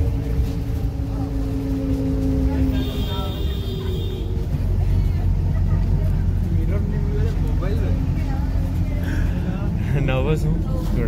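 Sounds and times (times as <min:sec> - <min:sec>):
bus engine rumbling: 0:00.0 - 0:11.0
faint voices: 0:00.0 - 0:11.0
road noise: 0:00.0 - 0:11.0.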